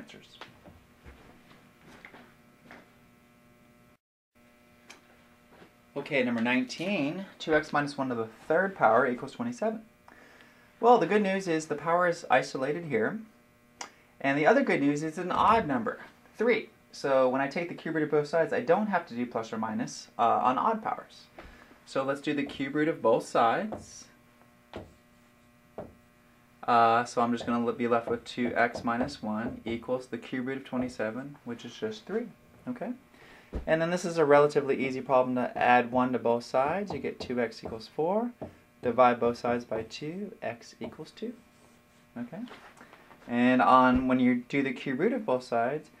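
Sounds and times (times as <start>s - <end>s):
low electrical hum: 0.0s - 46.0s
marker strokes on whiteboard: 26.8s - 29.9s.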